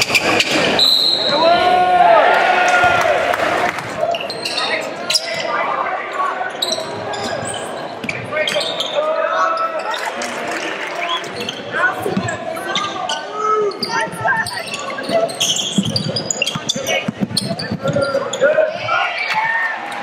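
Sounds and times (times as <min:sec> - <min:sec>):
sneakers squeaking: 0:00.0 - 0:01.5, 0:03.9 - 0:05.7, 0:06.4 - 0:10.2, 0:11.0 - 0:19.6
shouting voices: 0:01.1 - 0:15.6, 0:17.6 - 0:20.0.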